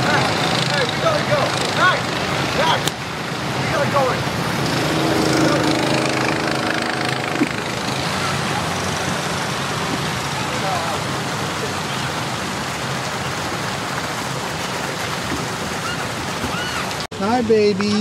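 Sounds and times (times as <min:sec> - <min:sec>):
water splashing: 0:00.0 - 0:18.0
bumper boat motor hum: 0:03.7 - 0:12.6.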